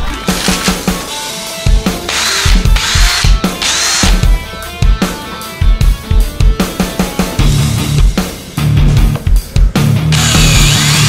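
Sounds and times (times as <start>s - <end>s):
rock music with steady beat: 0.0s - 11.0s
cordless drill motor whine: 2.1s - 4.0s, 10.1s - 11.0s.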